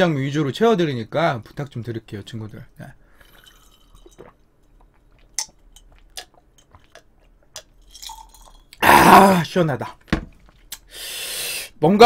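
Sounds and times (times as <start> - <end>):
person swallowing: 8.7 - 9.4
person sighing ah: 8.8 - 9.5.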